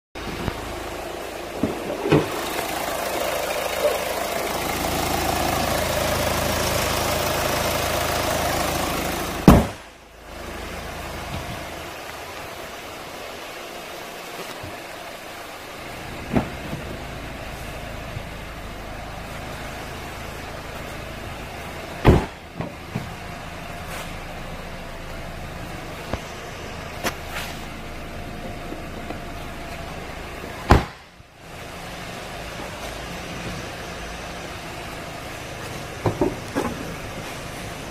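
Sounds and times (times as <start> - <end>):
car engine idling: 0.2 - 37.9.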